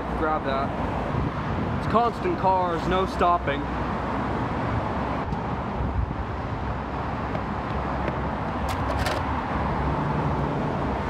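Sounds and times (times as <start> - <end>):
cars passing on busy road: 0.0 - 11.0.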